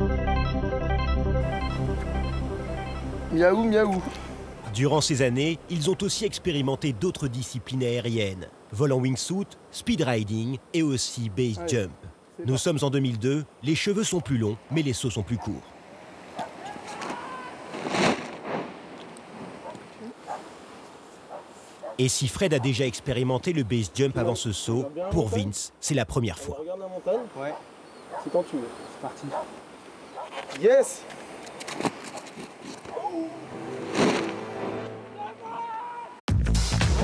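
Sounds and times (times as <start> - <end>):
outdoor background noise: 1.5 - 36.2
people shouting and whooping: 16.6 - 17.6, 35.2 - 36.2.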